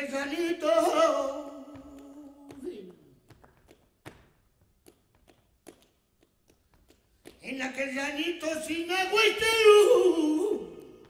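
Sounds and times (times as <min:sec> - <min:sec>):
dance shoes tapping on stage floor: 0:00.7 - 0:07.8.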